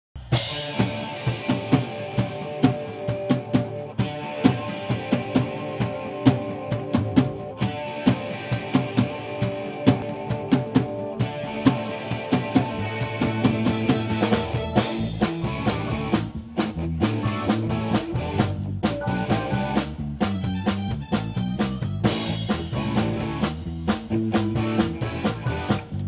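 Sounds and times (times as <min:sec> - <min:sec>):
drum kit beat: 0:00.2 - 0:26.0
live rock band playing: 0:00.2 - 0:26.0.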